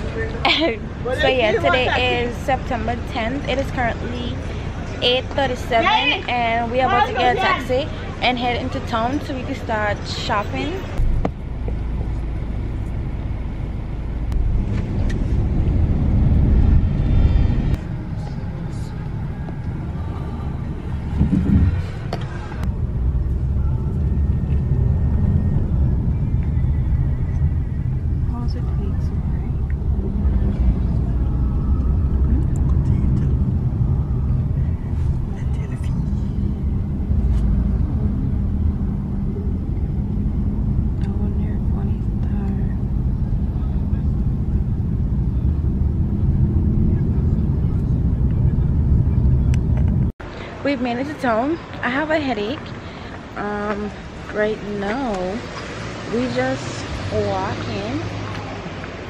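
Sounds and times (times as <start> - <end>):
road and engine rumble: 0.0 - 59.0.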